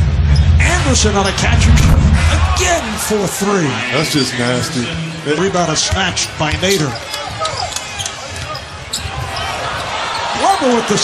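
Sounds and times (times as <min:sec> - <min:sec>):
indoor arena noise: 0:00.0 - 0:11.0.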